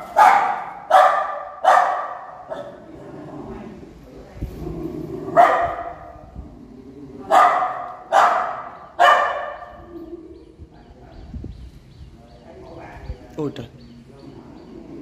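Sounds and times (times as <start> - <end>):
small dog barking: 0.0 - 2.8, 5.3 - 6.2, 7.3 - 9.8.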